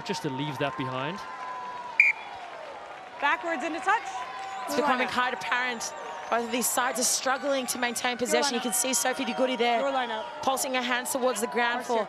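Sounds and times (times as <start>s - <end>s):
stadium crowd noise: 0.0s - 12.0s
referee's whistle blast: 2.0s - 2.3s.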